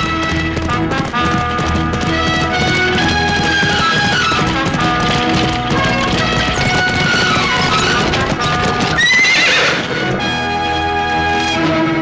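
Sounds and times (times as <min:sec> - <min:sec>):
film music: 0:00.0 - 0:12.0
horse hooves galloping: 0:00.0 - 0:12.0
horse whinnying: 0:01.4 - 0:10.9.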